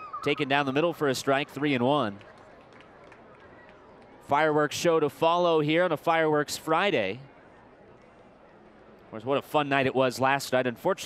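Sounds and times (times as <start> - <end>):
crowd murmur: 0.0 - 4.6.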